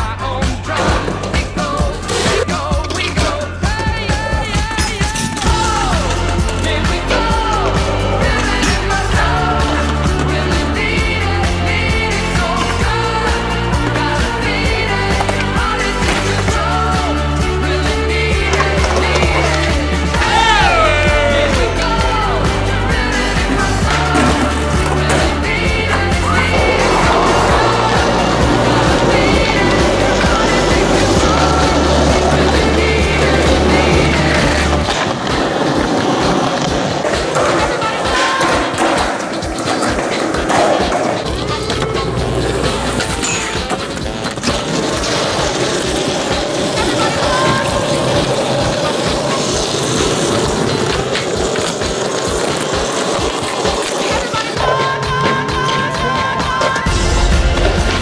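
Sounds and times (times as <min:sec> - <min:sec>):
music with heavy bass line: 0:00.0 - 0:34.9, 0:55.4 - 0:58.0
skateboard wheels rolling on concrete: 0:00.0 - 0:58.0
skateboard clacks: 0:00.3 - 0:56.9.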